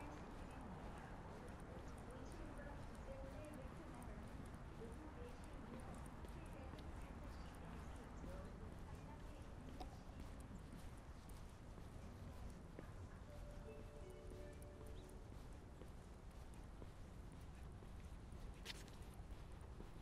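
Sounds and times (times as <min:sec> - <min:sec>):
footsteps on paved path: 0:00.0 - 0:20.0.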